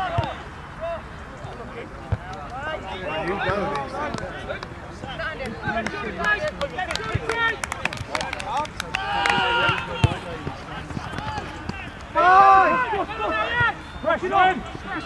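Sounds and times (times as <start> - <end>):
players shouting: 2.3 - 15.0.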